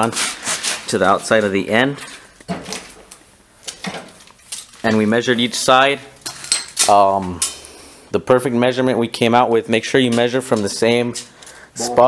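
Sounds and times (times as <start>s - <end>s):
man speaking: 0.9s - 2.1s, 4.8s - 6.2s, 6.9s - 12.0s.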